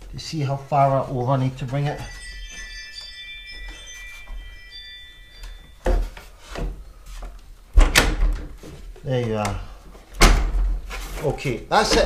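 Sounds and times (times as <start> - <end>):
high chiming tones: 0.2 - 7.0.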